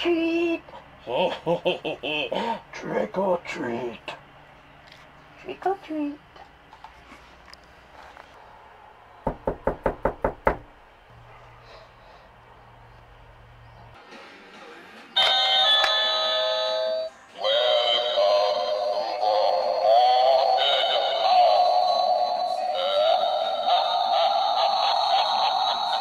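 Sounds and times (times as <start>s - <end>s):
electronic doorbell chime: 15.2s - 17.1s
synthesised voice singing over music: 17.2s - 26.0s.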